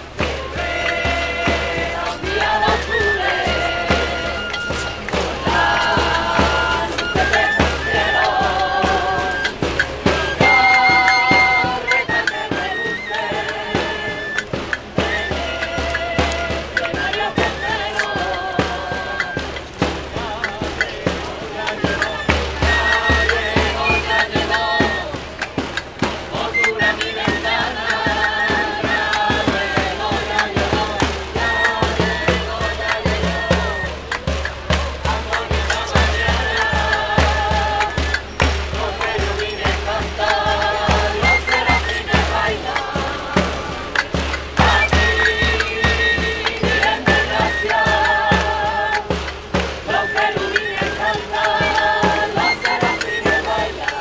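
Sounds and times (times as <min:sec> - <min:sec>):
drum beating time: 0:00.0 - 0:54.0
group singing folk song: 0:00.0 - 0:54.0
rhythmic hand clapping: 0:00.0 - 0:54.0.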